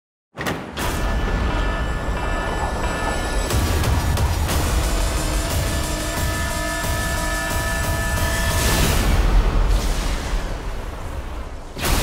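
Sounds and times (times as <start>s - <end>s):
dark music with held tones: 0.8s - 12.0s.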